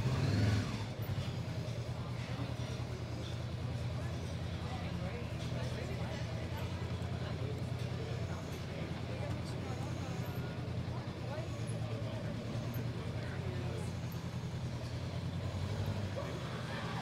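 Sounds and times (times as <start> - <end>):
motorcycle engine running: 0.0 - 17.0
people chattering: 0.0 - 17.0.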